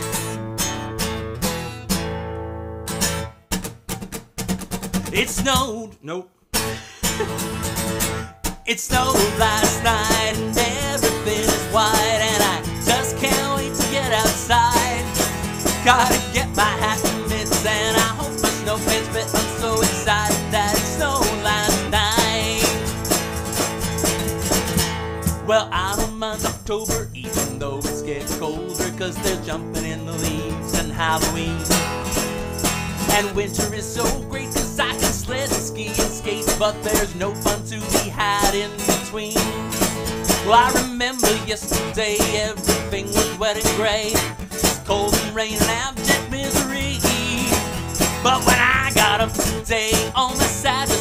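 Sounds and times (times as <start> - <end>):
acoustic guitar strumming: 0.0 - 5.9, 6.5 - 51.0
man singing: 5.1 - 7.4, 8.6 - 23.2, 25.4 - 32.0, 32.9 - 51.0.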